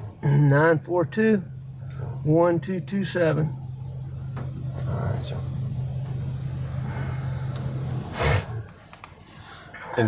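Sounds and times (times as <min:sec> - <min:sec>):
vehicle hum inside cabin: 0:00.0 - 0:10.0.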